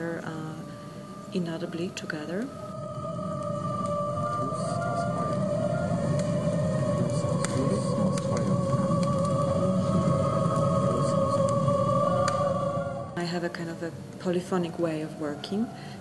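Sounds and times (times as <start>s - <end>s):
long held drone tone: 0.0s - 16.0s
low steady rumble: 0.0s - 16.0s.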